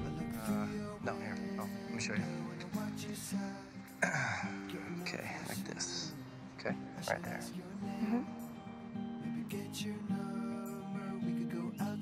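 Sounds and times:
pop song with breathy vocal: 0:00.0 - 0:12.0.

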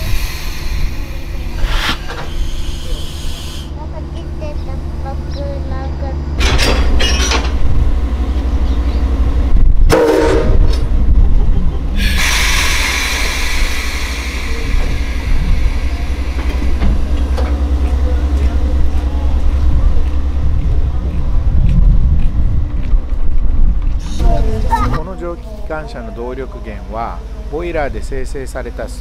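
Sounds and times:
air hissing from locomotive: 0:00.0 - 0:03.8, 0:12.0 - 0:18.4
low rumble: 0:00.0 - 0:29.0.

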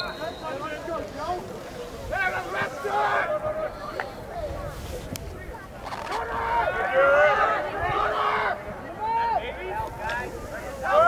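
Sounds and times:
spectators shouting: 0:00.0 - 0:03.8, 0:06.1 - 0:11.0.

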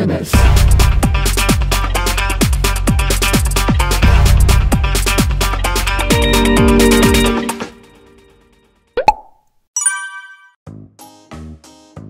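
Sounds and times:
music: 0:00.3 - 0:08.8, 0:10.6 - 0:12.0
bright ringing chime: 0:06.0 - 0:08.4, 0:09.8 - 0:10.6
rising cartoon pop: 0:09.0 - 0:09.4.

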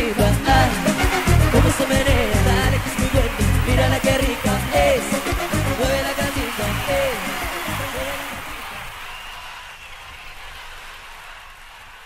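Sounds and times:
live cumbia band music: 0:00.0 - 0:08.9.

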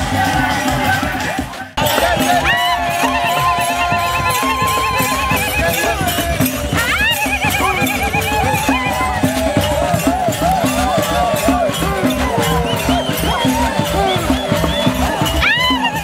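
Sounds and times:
crowd singing: 0:00.0 - 0:16.0
drum beaten in steady rhythm: 0:00.0 - 0:16.0.

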